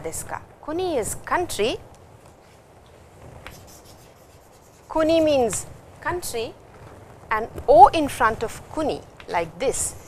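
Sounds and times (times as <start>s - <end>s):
chalk scratching on chalkboard: 3.5s - 5.4s.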